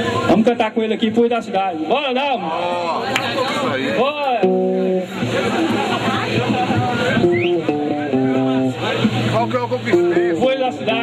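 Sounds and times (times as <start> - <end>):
electric guitar chords: 4.3 - 11.0.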